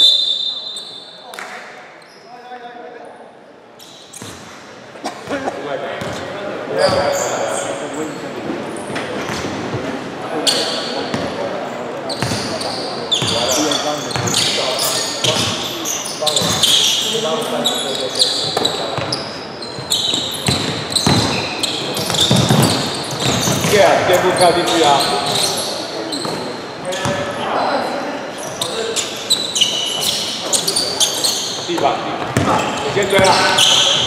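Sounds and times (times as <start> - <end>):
sneakers squeaking: 0.0 - 2.5, 3.8 - 34.0
players calling out: 12.1 - 34.0.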